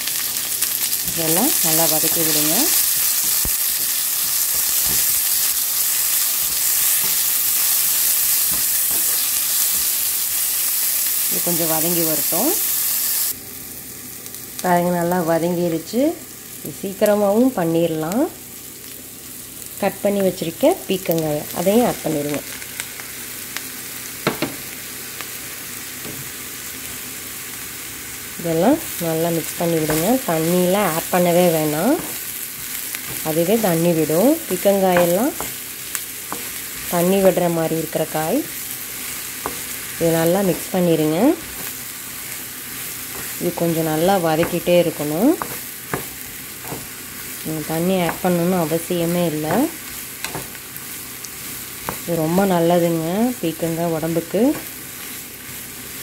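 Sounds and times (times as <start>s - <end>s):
onions sizzling in hot oil: 0.0s - 56.0s
wooden spatula knocking on pan: 24.2s - 24.6s
wooden spatula stirring: 42.7s - 46.9s.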